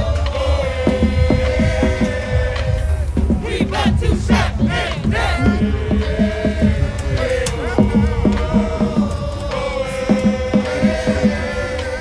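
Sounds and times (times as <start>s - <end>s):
drum line steady beat: 0.0s - 12.0s
people shouting a chant: 0.0s - 12.0s.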